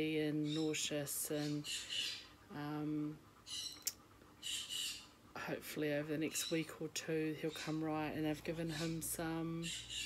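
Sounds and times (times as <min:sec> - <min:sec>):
pet birds calling: 0:00.0 - 0:10.0.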